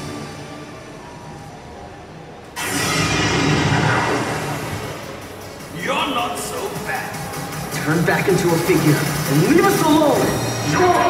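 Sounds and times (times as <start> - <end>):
deep noisy sound effect burst: 2.5 - 11.0.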